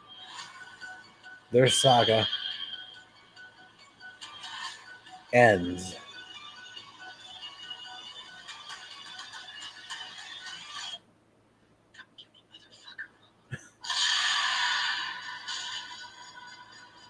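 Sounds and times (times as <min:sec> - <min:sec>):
tense musical score: 0:00.0 - 0:09.9.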